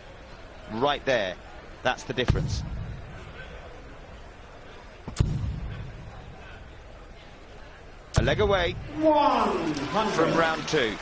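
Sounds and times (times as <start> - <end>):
faint steady background noise: 0.0 - 11.0.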